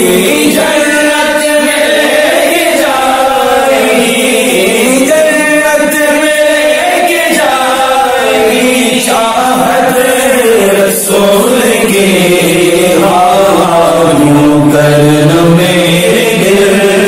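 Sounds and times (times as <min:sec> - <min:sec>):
man singing devotional chant: 0:00.0 - 0:17.0.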